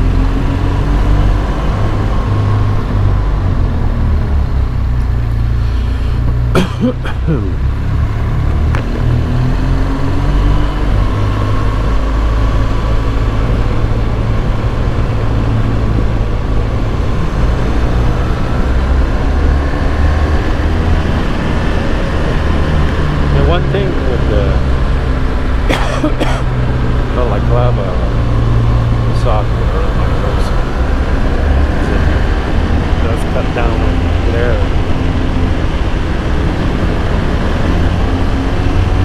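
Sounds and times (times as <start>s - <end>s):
motorcycle engine running: 0.0s - 39.0s
rushing wind noise: 0.0s - 39.0s.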